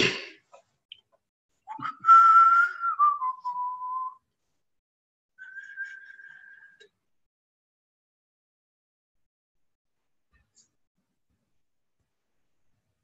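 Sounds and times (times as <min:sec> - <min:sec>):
person whistling: 0:01.7 - 0:04.2, 0:05.4 - 0:06.8.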